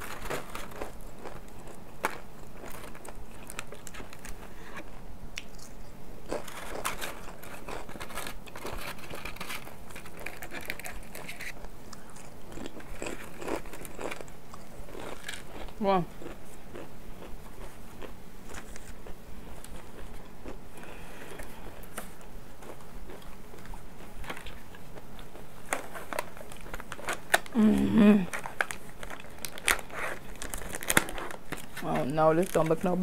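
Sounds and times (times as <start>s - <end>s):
plastic trays and wrappers crinkling: 0.0s - 4.8s, 6.3s - 12.0s, 25.6s - 27.6s, 28.2s - 33.0s
chewing and biting: 5.4s - 20.6s
person humming: 27.5s - 28.4s.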